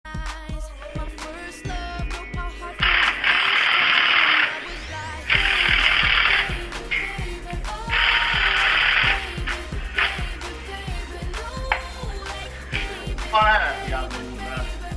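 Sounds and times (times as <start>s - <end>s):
pop song with steady beat: 0.0s - 14.9s
power tool bursts: 2.8s - 7.0s.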